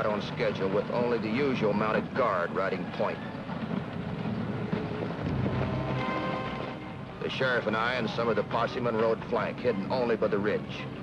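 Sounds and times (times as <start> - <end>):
low rumbling noise: 0.0 - 11.0
orchestral music: 5.2 - 9.8.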